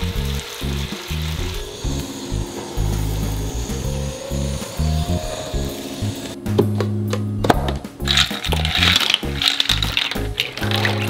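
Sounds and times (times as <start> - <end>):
background music: 0.0 - 11.0
ice cubes clinking on steel tray: 8.1 - 11.0.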